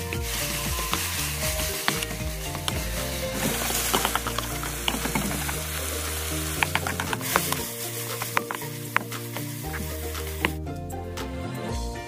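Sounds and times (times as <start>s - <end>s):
meat sizzling in a wok: 0.0s - 10.6s
spatula scraping a pan: 0.0s - 10.6s
background music: 0.0s - 12.0s.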